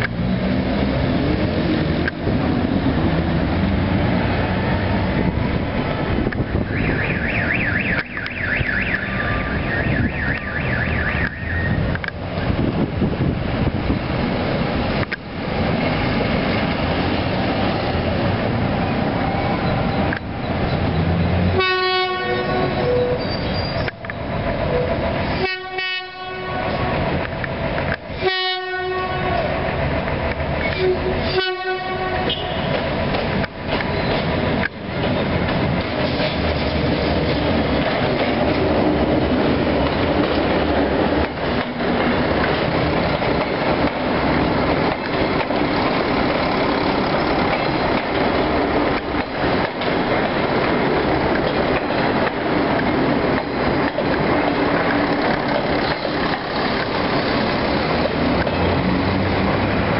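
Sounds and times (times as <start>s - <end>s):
engines rumbling: 0.0s - 59.9s
street traffic: 0.0s - 59.9s
train horn blasts: 21.5s - 23.2s, 24.7s - 27.1s, 28.2s - 29.7s, 30.7s - 32.8s.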